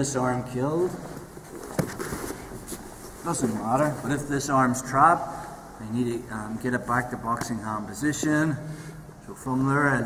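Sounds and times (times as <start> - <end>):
bodies shifting on foam mat: 1.0 - 4.2
cloth rustling: 1.0 - 4.3.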